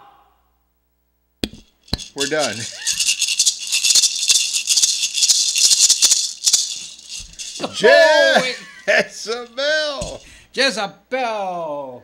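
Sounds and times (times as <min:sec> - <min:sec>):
maracas rattling: 0:01.5 - 0:10.4.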